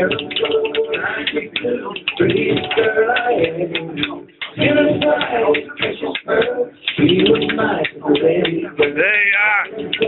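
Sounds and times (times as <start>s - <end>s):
man vocalising: 8.9s - 9.8s.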